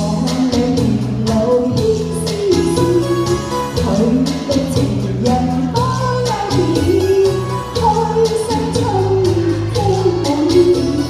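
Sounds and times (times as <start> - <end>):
musical accompaniment with steady beat: 0.0 - 11.0
person singing into a microphone: 0.0 - 11.0.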